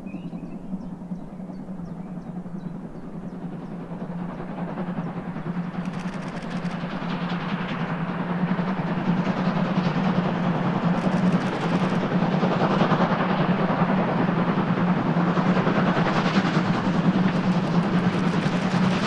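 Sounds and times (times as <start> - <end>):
steam train approaching: 0.0 - 19.0.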